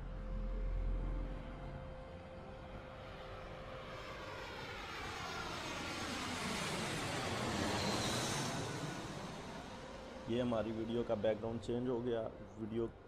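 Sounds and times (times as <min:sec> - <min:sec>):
jet airliner flying past: 0:00.0 - 0:13.0.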